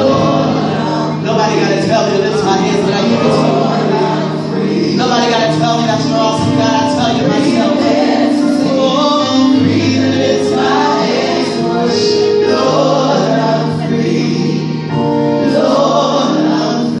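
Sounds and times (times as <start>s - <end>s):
gospel group singing in harmony: 0.0s - 17.0s.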